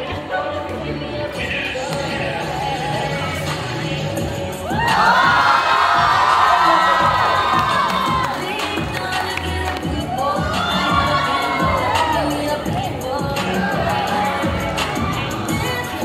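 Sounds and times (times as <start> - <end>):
crowd cheering and shrieking: 4.4 - 9.3, 9.9 - 16.0.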